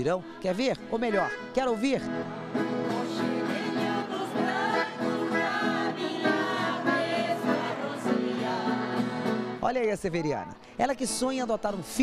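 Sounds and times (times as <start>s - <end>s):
acoustic guitars strummed: 0.8s - 9.6s
voices singing along: 2.3s - 9.6s.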